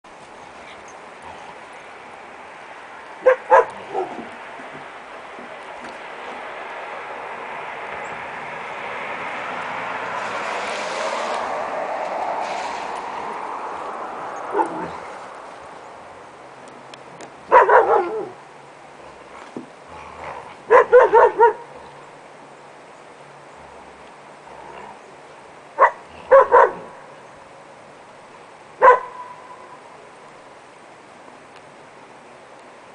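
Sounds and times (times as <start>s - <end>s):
dogs barking: 3.2s - 4.3s, 14.5s - 15.0s, 17.5s - 18.4s, 20.7s - 21.8s, 25.8s - 26.9s, 28.8s - 29.4s
dogs play-fighting: 14.4s - 15.6s.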